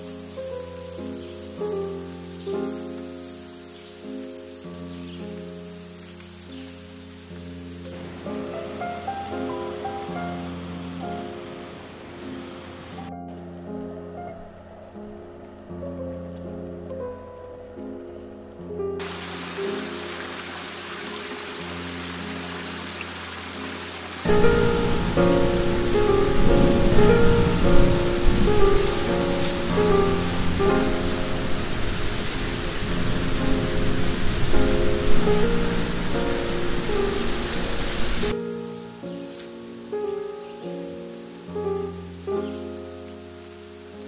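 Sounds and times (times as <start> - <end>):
rain falling: 0.0 - 13.1, 19.0 - 44.0
soft piano music: 0.0 - 44.0.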